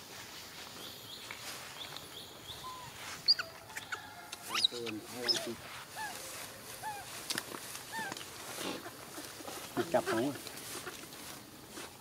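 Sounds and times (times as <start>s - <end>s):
infant monkey squeaking: 2.6s - 6.2s, 7.9s - 8.2s.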